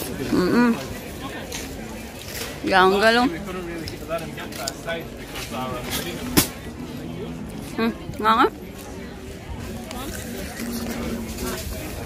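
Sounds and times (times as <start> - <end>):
background noise: 0.0 - 12.0
faint voices talking: 0.0 - 12.0.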